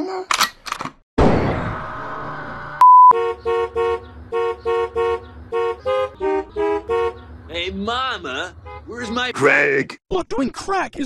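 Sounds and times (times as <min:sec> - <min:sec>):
loud crash: 0:01.2 - 0:02.8
loud steady beep: 0:02.8 - 0:03.2
car horn tooting a tune: 0:03.1 - 0:07.3, 0:08.6 - 0:09.3.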